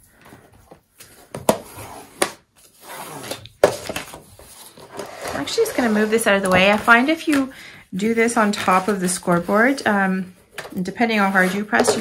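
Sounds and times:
paper rustling: 1.0s - 12.0s.

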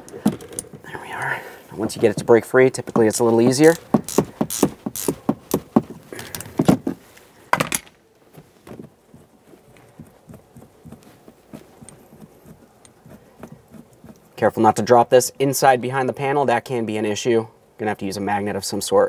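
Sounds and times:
ratchet wrench clicking: 3.7s - 5.2s.

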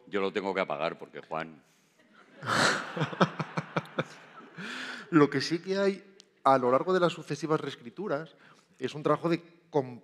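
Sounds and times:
man laughing: 2.4s - 4.6s.

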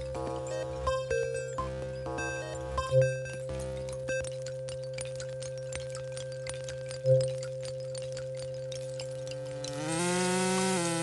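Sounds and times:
electronic drone tones: 0.0s - 4.3s, 9.4s - 11.0s
small clicks and crackles: 2.4s - 11.0s.

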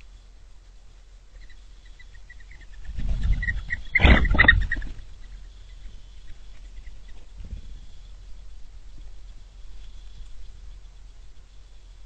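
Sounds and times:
low rumble: 0.0s - 12.0s
small birds chipping: 0.0s - 12.0s.

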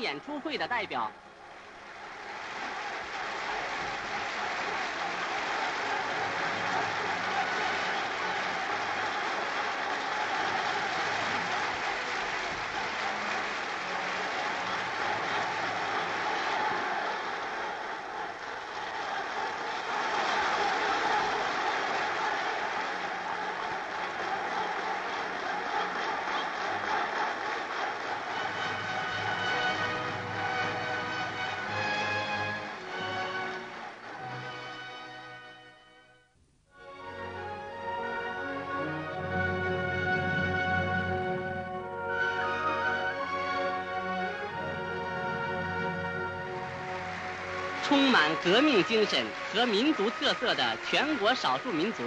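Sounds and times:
crowd applauding and cheering: 0.0s - 35.5s, 37.1s - 52.0s.

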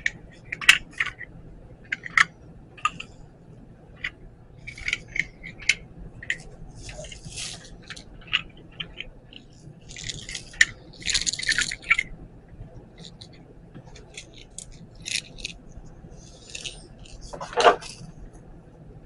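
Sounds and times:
plastic parts clicking and rattling: 0.0s - 3.2s, 4.0s - 12.1s, 12.9s - 15.6s, 16.2s - 18.1s
plastic packaging crinkling: 6.3s - 12.0s.

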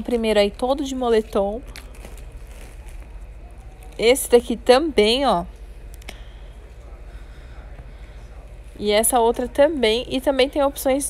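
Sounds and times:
steady low hum: 0.0s - 11.0s
clothing rustling: 1.7s - 4.0s.

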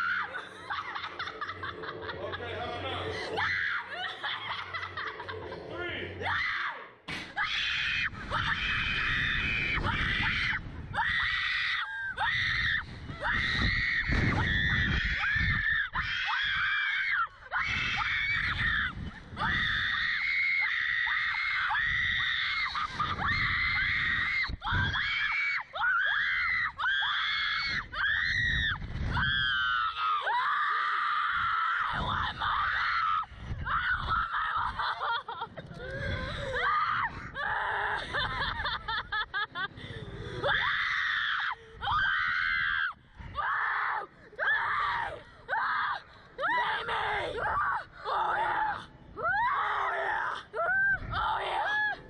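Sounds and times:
girls screaming: 0.0s - 1.3s, 6.2s - 38.7s, 40.4s - 52.0s
wind rushing over microphone: 7.7s - 16.8s, 17.6s - 20.2s, 21.6s - 25.3s, 27.4s - 29.9s, 31.4s - 34.8s, 35.5s - 40.6s, 50.6s - 51.3s.

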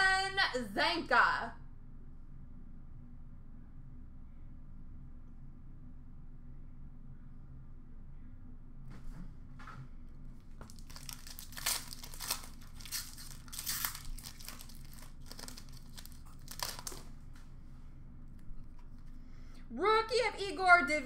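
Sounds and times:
foil wrapper tearing and crinkling: 10.6s - 17.2s.

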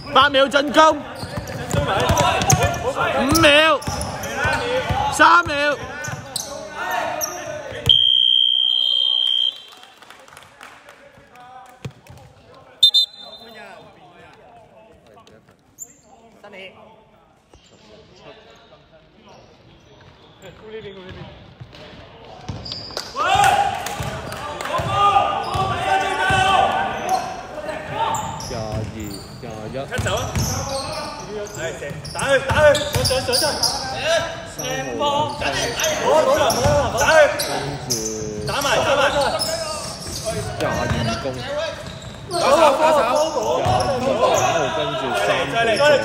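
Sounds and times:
players' voices calling: 0.0s - 9.8s, 24.8s - 46.0s
high whistle blast: 7.9s - 9.8s.

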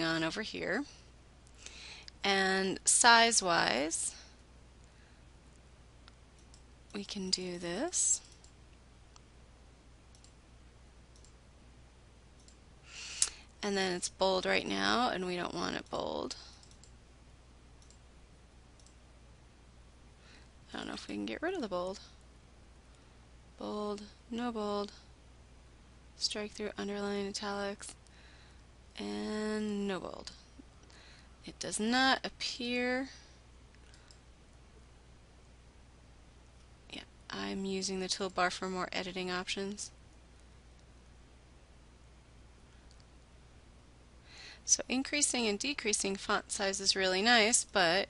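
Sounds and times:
low steady room hum: 0.0s - 48.0s
computer mouse clicks: 5.5s - 6.7s, 8.2s - 9.3s, 10.1s - 10.4s, 11.1s - 11.4s, 12.4s - 12.6s, 15.8s - 17.0s, 17.8s - 18.0s, 18.8s - 19.0s, 33.7s - 34.2s
faint computer mouse clicks: 16.5s - 17.0s, 18.8s - 19.0s, 33.7s - 34.2s.

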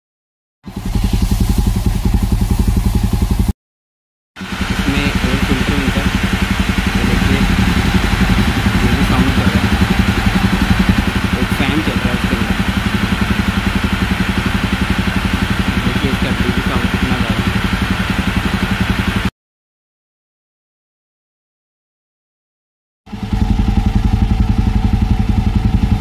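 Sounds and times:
motorcycle engine idling: 0.7s - 3.5s, 4.4s - 19.3s, 23.1s - 26.0s.

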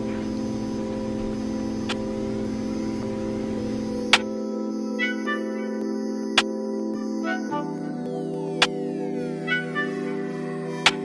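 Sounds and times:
low rumble: 0.0s - 4.2s
background music steady chord: 0.0s - 11.0s.

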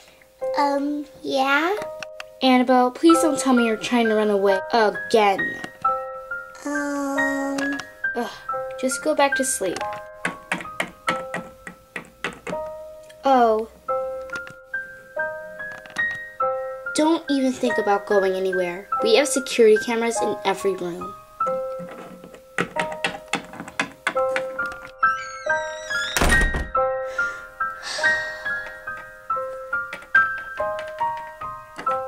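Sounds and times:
slow piano notes: 0.0s - 32.0s.

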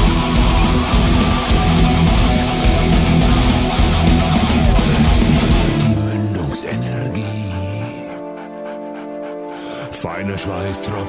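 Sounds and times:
heavy metal band playing: 0.0s - 8.9s
electric guitar riffing: 0.0s - 11.0s.

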